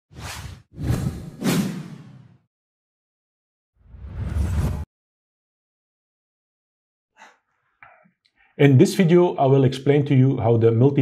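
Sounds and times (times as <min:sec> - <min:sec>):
whooshes: 0:03.8 - 0:04.9.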